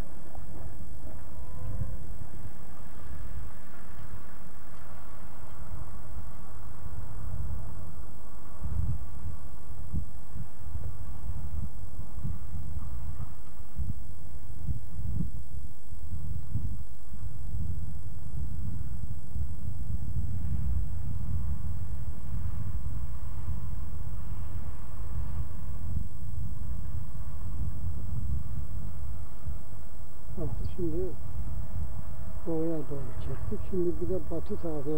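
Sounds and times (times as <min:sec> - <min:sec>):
wind buffeting microphone: 0:00.0 - 0:34.9.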